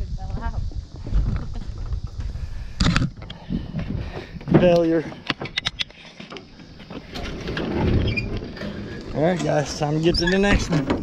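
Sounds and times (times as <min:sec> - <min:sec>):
rustling scrape: 0:05.9 - 0:09.8.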